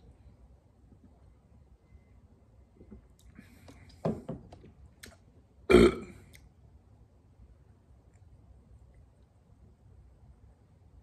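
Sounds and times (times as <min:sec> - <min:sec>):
man burping: 0:05.7 - 0:06.2.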